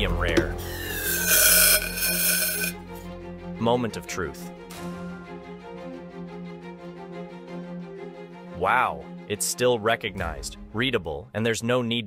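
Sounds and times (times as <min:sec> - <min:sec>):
background music: 0:00.0 - 0:12.0
metal tube scraping steel rim: 0:00.3 - 0:02.8.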